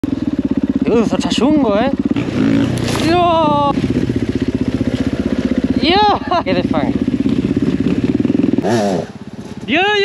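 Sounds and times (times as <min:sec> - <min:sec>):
dirt bike engine chugging: 0:00.0 - 0:10.0.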